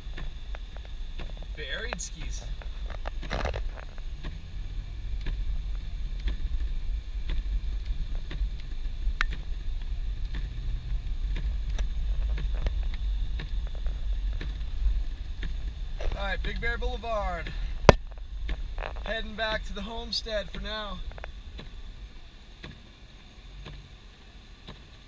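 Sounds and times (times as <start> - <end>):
car driving on snow: 0.0 - 25.0
sharp ticks and crackles: 0.0 - 25.0.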